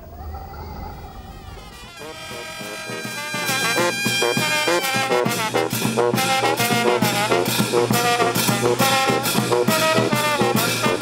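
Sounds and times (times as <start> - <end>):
brass band music: 1.5 - 11.0.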